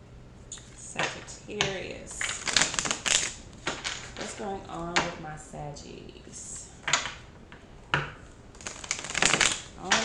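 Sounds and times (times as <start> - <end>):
cards being shuffled: 2.2 - 4.4, 8.6 - 10.0.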